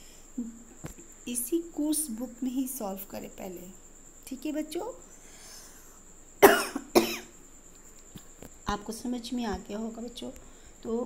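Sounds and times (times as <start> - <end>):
person coughing: 6.4 - 7.3.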